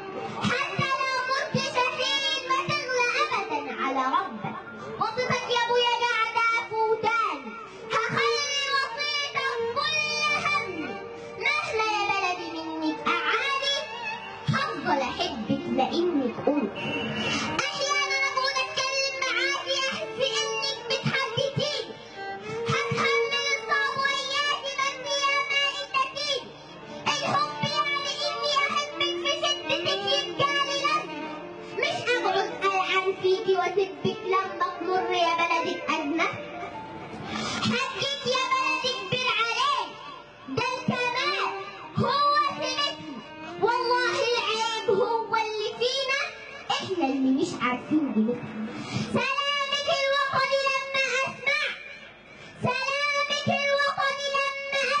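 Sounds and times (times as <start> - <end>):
girl singing into a microphone: 0.2 - 16.4, 17.3 - 31.1, 31.7 - 36.4, 37.4 - 51.8, 52.5 - 55.0.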